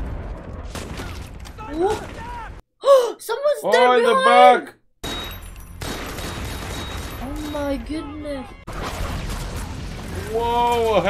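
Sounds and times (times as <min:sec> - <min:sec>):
gunfire and explosions: 0:00.0 - 0:02.6, 0:03.6 - 0:11.0
woman exclaiming: 0:02.8 - 0:04.7.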